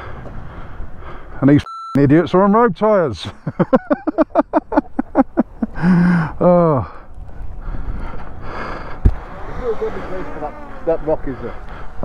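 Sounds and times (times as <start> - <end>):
wind rumble on microphone: 5.6 - 12.0.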